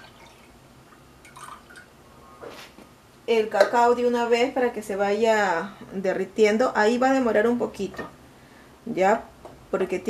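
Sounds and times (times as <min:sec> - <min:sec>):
dripping: 0:00.0 - 0:00.6, 0:01.2 - 0:01.9.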